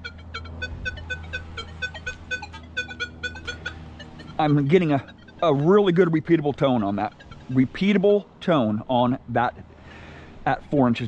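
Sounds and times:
metal detector beeping: 0:00.0 - 0:08.4.

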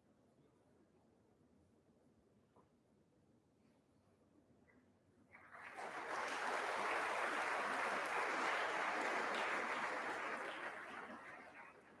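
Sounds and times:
audience applause: 0:05.4 - 0:12.0.

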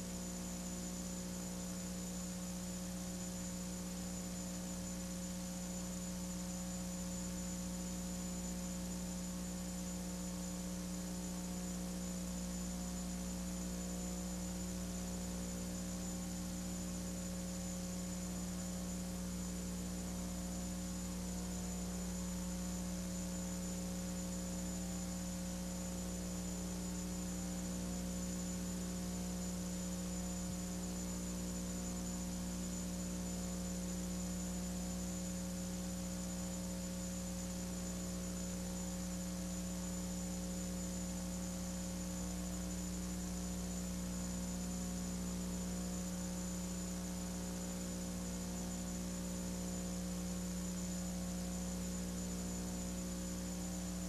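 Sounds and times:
electrical mains hum: 0:00.0 - 0:54.0.

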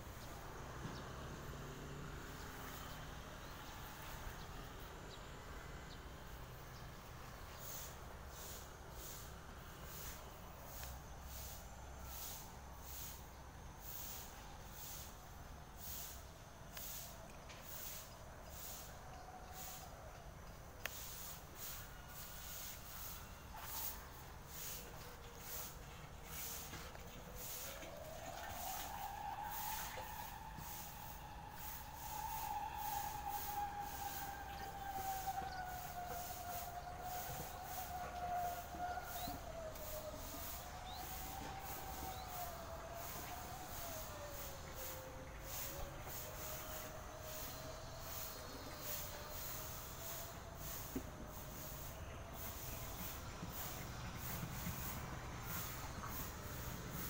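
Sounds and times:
siren wailing: 0:22.5 - 0:57.0.

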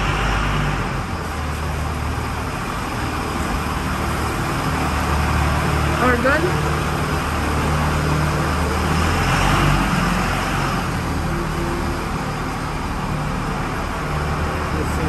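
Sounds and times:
road traffic engine hum: 0:00.0 - 0:15.0.

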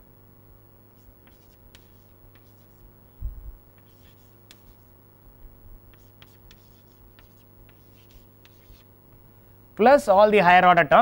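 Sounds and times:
chalk tapping and scratching: 0:01.0 - 0:02.9, 0:03.8 - 0:05.0, 0:05.9 - 0:08.9.

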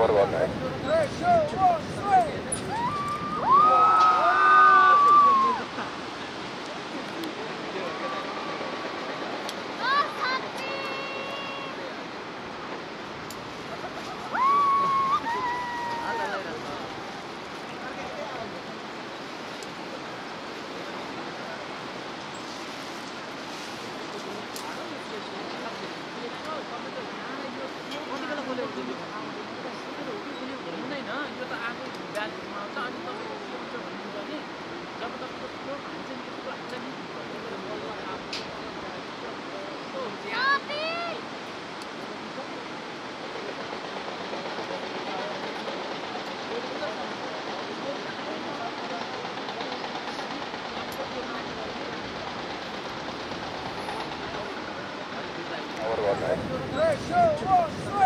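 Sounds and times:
river rushing: 0:00.0 - 0:58.0.

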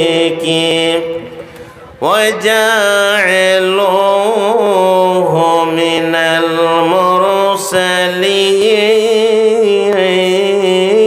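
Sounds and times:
man chanting a sermon: 0:00.0 - 0:01.4.

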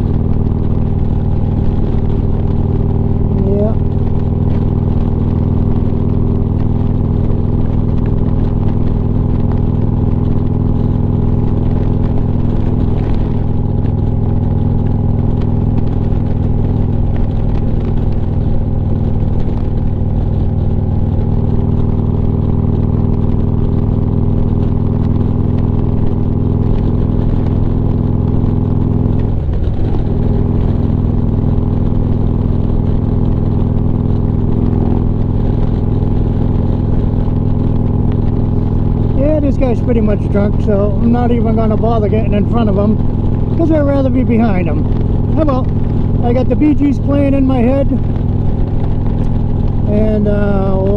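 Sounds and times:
motorcycle engine cruising: 0:00.0 - 0:50.9.

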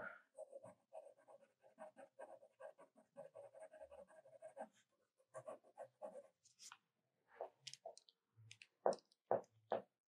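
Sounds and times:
pencil strokes on paper: 0:00.2 - 0:06.8.

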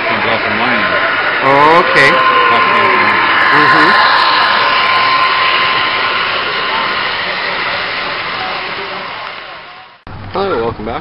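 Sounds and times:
faint voices: 0:00.0 - 0:10.0
model train wheels and motor whirring: 0:00.0 - 0:10.0.

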